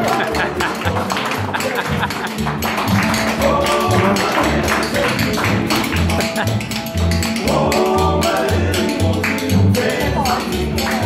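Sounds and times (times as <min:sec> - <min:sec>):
slide guitar gliding notes: 0:00.0 - 0:11.0
strummed acoustic guitar: 0:00.0 - 0:11.0
upright bass notes: 0:00.0 - 0:11.0.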